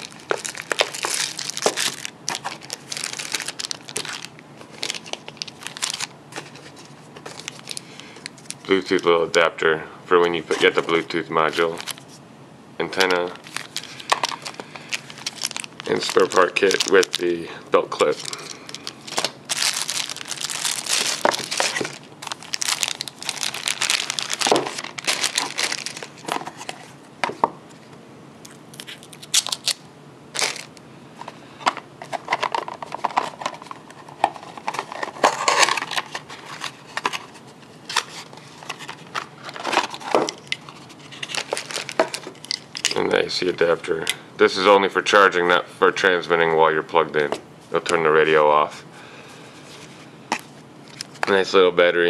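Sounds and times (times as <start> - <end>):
plastic bags crinkling: 0.0 - 9.0, 11.6 - 12.2, 12.9 - 27.4, 28.7 - 29.8, 30.4 - 43.0.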